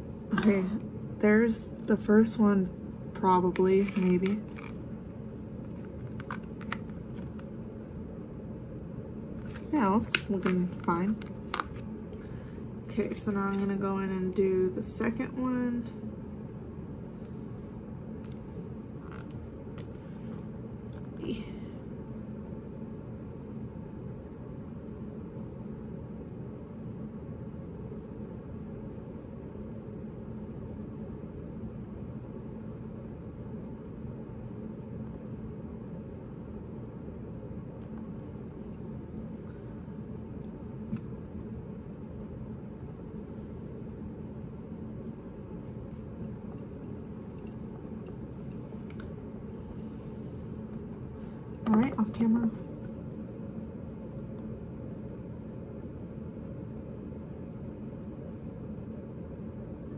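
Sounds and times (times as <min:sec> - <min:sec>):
faint constant tone: 0:00.0 - 0:59.9
low background hum: 0:00.0 - 0:59.9.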